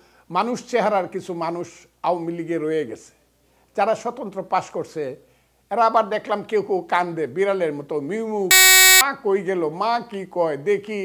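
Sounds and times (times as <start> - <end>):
electronic buzz tone: 8.5 - 9.0.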